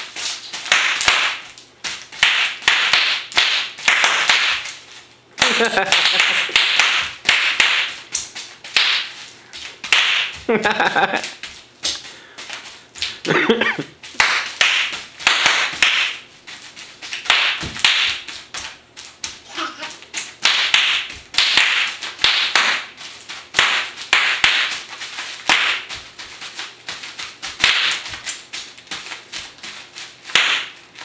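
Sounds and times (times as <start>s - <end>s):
bubble wrap popping underfoot: 0.0s - 31.0s.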